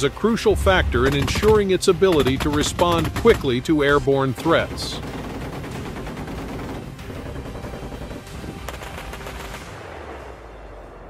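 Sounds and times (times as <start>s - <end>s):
autocannons firing rapid burst: 0.5s - 10.6s.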